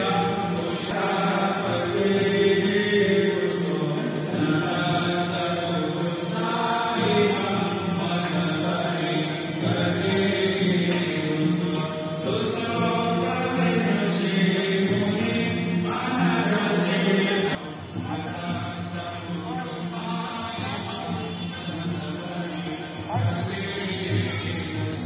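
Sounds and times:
devotional mantra chanting: 0.0 - 25.0
music: 0.0 - 25.0.

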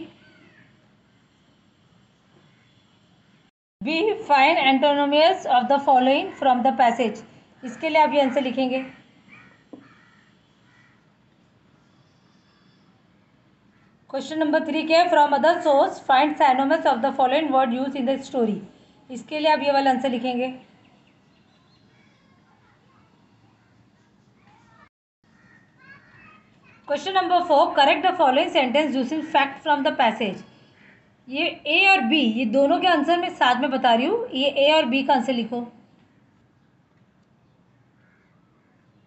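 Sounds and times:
woman speaking loudly: 3.8 - 9.0, 26.9 - 30.4, 31.3 - 35.7
faint short bird calls: 9.2 - 11.0, 25.3 - 26.9, 30.5 - 31.1, 38.0 - 39.0.

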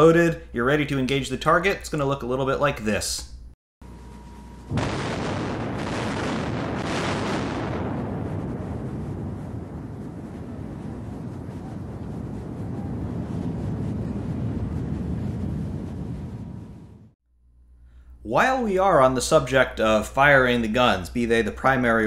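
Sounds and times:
long heavy rumble: 4.0 - 17.1.

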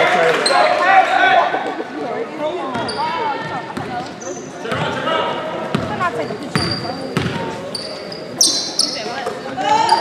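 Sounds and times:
voices of players and spectators: 0.0 - 10.0.

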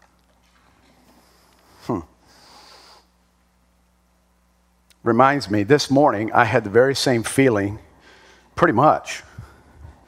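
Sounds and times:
man breathing sniff: 1.1 - 3.2.

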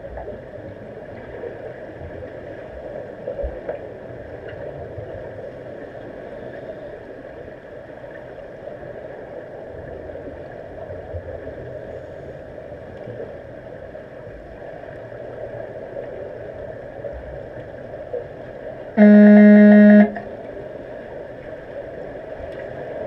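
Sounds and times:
muffled underwater noise: 17.9 - 21.1
low electronic horn tone: 19.0 - 20.4.

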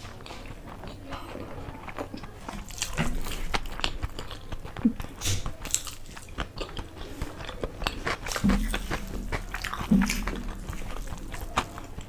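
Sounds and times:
close chewing with wet mouth clicks: 0.0 - 12.0.

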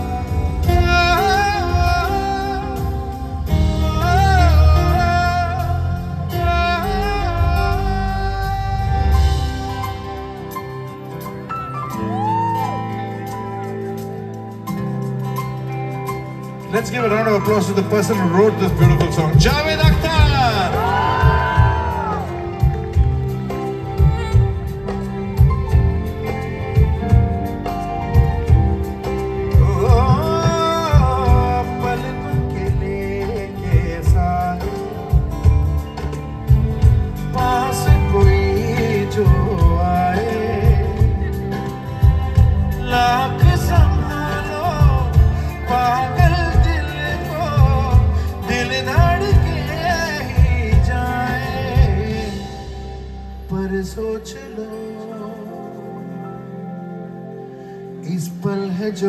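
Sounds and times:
male lead vocal singing: 0.0 - 10.3, 17.0 - 22.8, 29.5 - 35.6, 37.2 - 56.3, 58.0 - 59.0
live band playing: 0.0 - 59.0.

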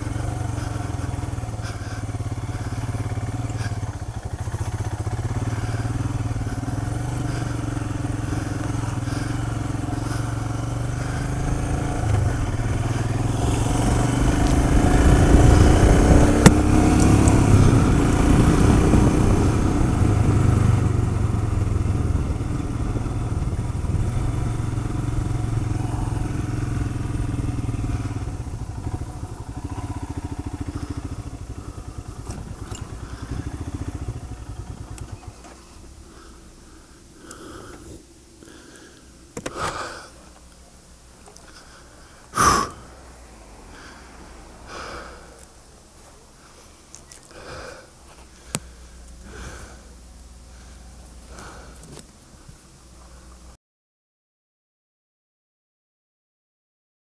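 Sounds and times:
motorcycle engine running: 0.0 - 43.2
wind rushing: 12.6 - 20.7.

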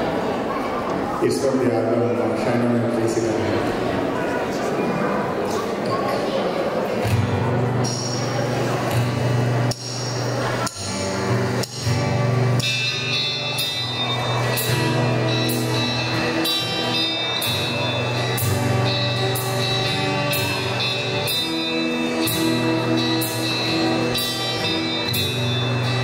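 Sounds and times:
acoustic guitar through pa: 1.2 - 26.0
high ticking beat: 7.8 - 26.0.

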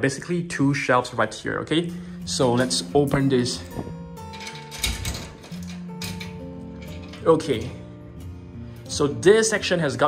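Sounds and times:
background music with held notes: 0.0 - 10.0
scraping handling noise: 2.4 - 7.8.

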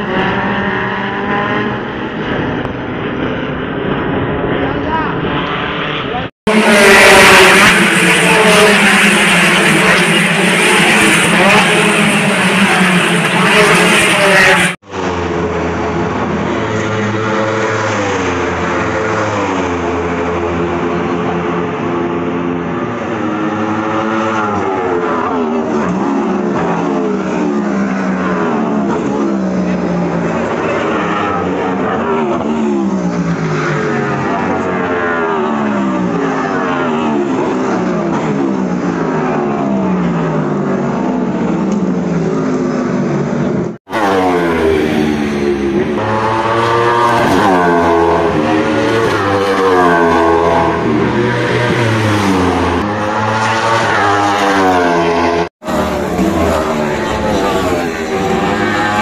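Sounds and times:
race cars passing at speed: 0.0 - 59.0.

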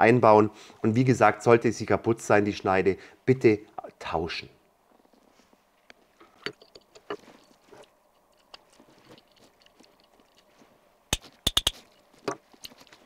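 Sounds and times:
small metal parts clicking: 11.2 - 12.0.

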